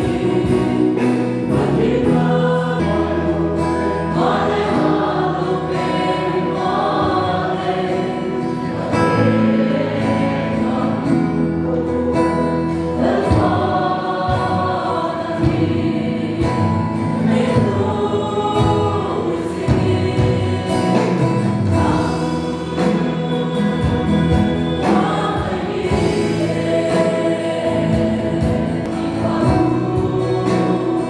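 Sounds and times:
choir singing a hymn: 0.0 - 31.0.

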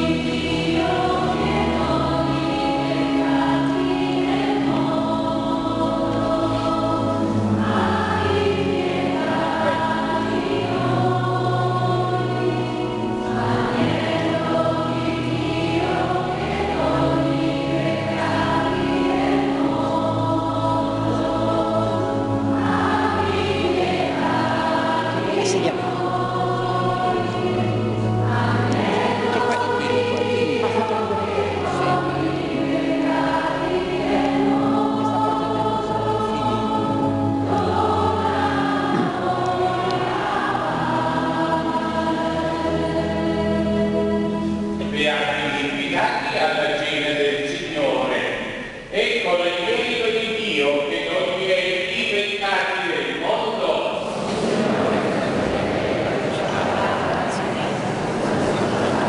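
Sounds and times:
church choir singing a hymn: 0.0 - 59.0
held accompaniment notes: 0.0 - 59.0.

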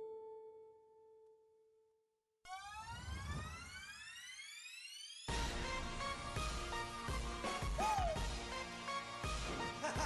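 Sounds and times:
rising synth sweep: 2.5 - 6.0.

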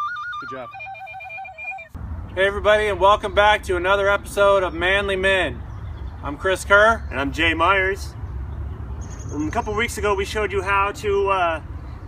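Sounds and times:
tin whistle trill: 0.0 - 2.0.

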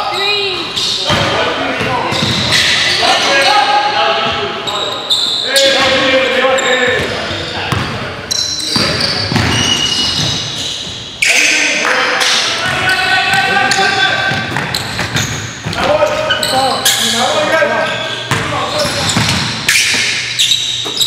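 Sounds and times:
players calling out: 0.0 - 21.0
sneakers squeaking: 0.0 - 21.0.

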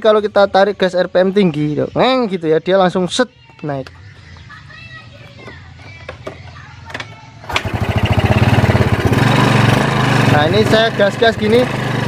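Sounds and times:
scooter engine idling and revving: 6.1 - 12.0.

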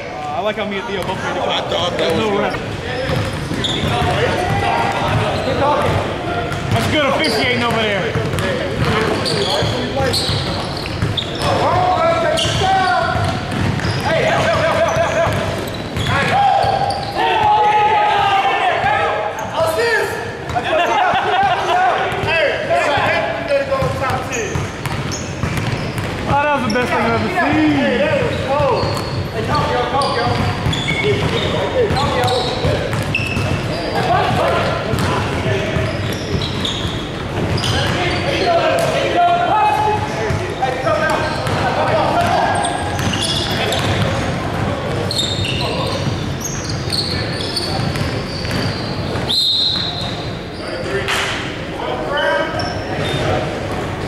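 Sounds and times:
players shouting and talking: 0.0 - 54.0
basketball bouncing on hardwood: 7.7 - 9.0.

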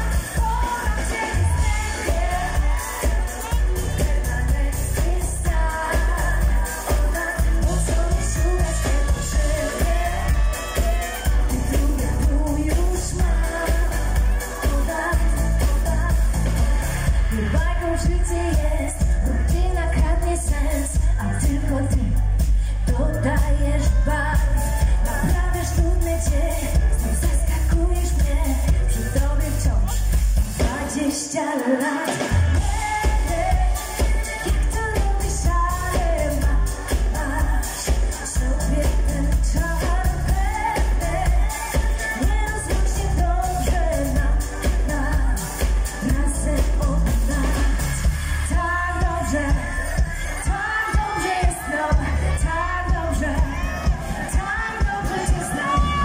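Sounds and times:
bass-heavy dance beat: 0.0 - 31.0, 32.5 - 56.0
woman singing into a microphone: 0.0 - 56.0.

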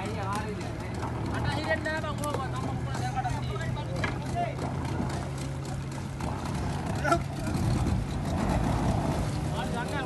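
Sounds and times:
boat engine idling: 0.0 - 10.0.

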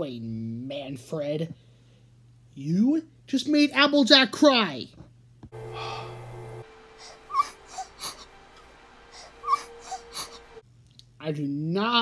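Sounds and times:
steady held background note: 5.6 - 10.6.

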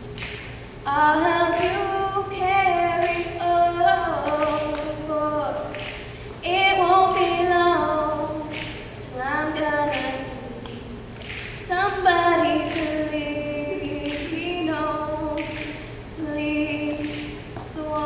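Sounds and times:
girl singing a cappella: 0.8 - 18.0.

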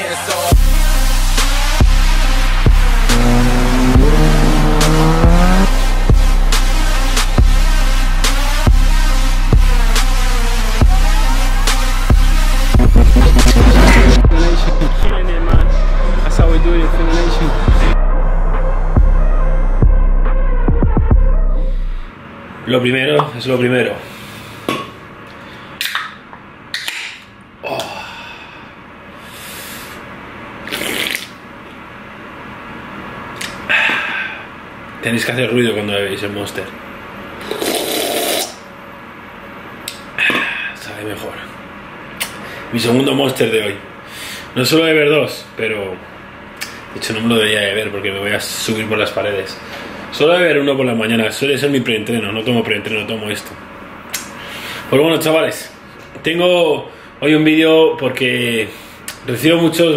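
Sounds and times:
electronic music beat thuds: 0.5 - 22.1
motorcycle engine revving: 2.2 - 6.5, 12.8 - 14.4.

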